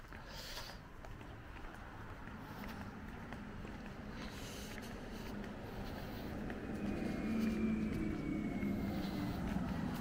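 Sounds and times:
car driving past: 1.7 - 10.0.

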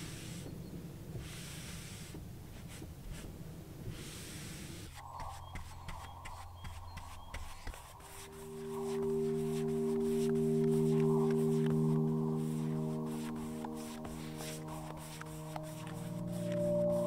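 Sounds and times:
brush scrubbing wood: 3.9 - 17.0
music of long held chords: 5.0 - 17.0.

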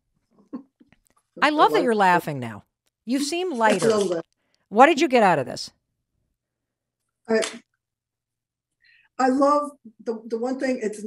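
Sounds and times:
woman saying a word laughing: 3.1 - 4.2.

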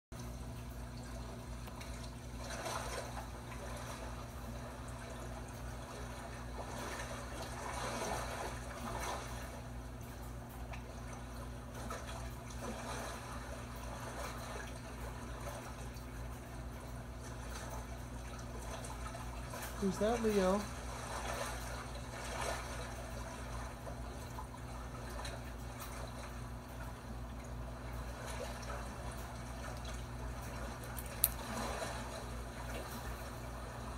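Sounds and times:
steady low hum: 0.2 - 33.9
water trickling from television: 0.2 - 33.9.

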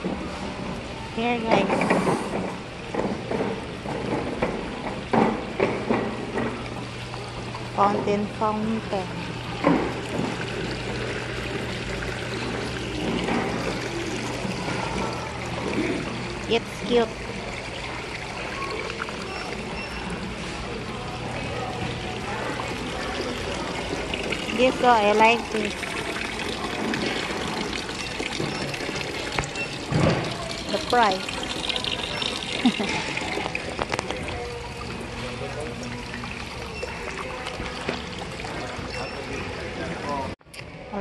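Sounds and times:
water fountain splashing: 2.5 - 40.0.

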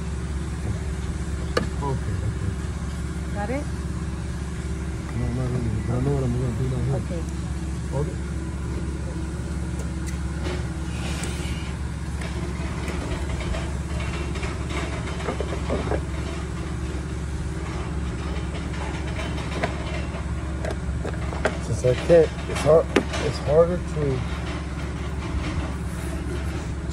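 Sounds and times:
vehicle engine idling: 0.0 - 26.9
tool tapping and scraping: 17.6 - 26.9.

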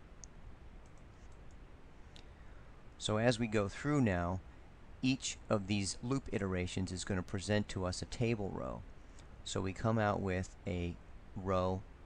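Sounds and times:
faint clicks: 0.2 - 2.3.

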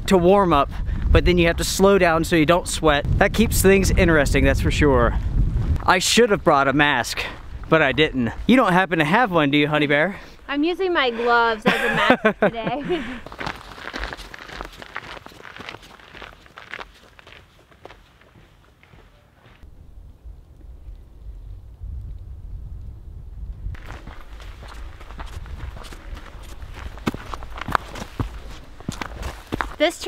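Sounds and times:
low wind rumble on microphone: 0.0 - 5.9, 7.3 - 8.5, 19.6 - 29.8
footsteps on rocky trail: 6.9 - 8.6, 11.7 - 19.7, 23.7 - 30.0.

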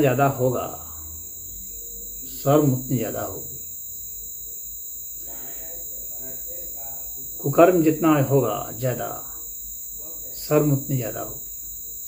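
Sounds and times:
faint steady tone: 0.0 - 12.0
high-pitched insect-like trill: 0.0 - 12.0.

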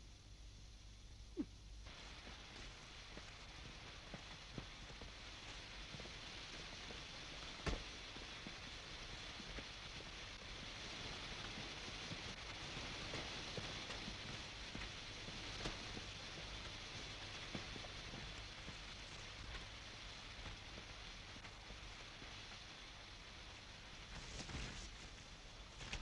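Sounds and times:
faint steady hiss: 0.0 - 26.0
snaps and clicks in undergrowth: 24.0 - 26.0.

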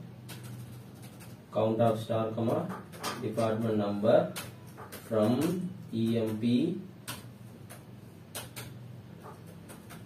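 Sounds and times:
keyboard key clicks: 4.3 - 10.0.

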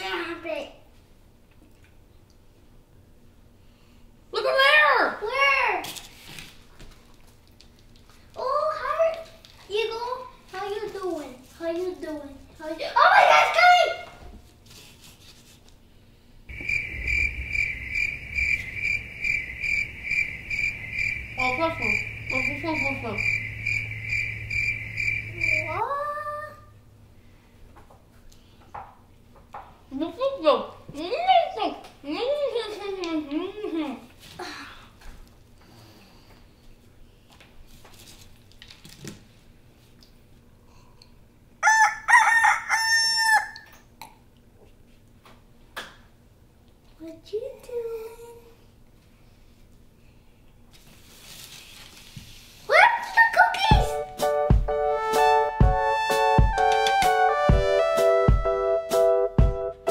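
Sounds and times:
crickets chirping: 16.5 - 26.1
rooster crowing: 16.6 - 22.4, 23.2 - 25.6, 41.6 - 43.7.

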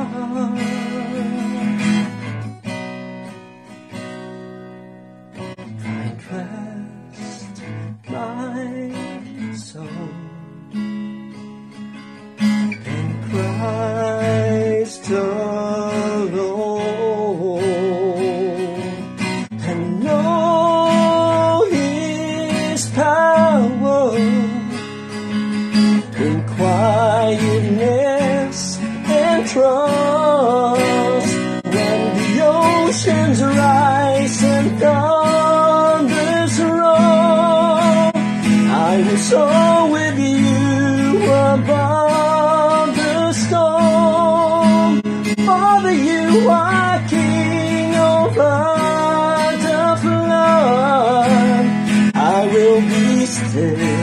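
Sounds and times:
man singing: 0.0 - 2.4, 5.6 - 10.8, 12.7 - 54.0
acoustic guitar strumming: 0.0 - 54.0.

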